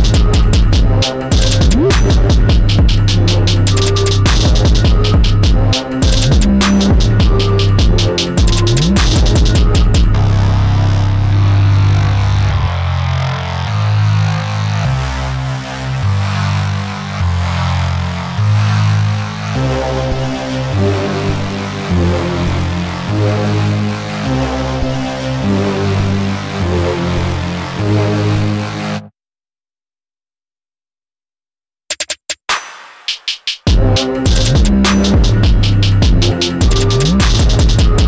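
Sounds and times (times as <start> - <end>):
higher melodic notes: 0.0 - 12.4
deep loud bass line: 0.0 - 29.0, 33.7 - 38.0.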